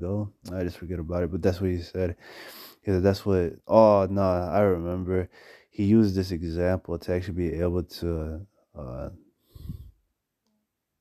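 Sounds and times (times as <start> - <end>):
man speaking: 0.0 - 2.2, 2.8 - 9.2
breathy vocal sound: 9.5 - 10.0.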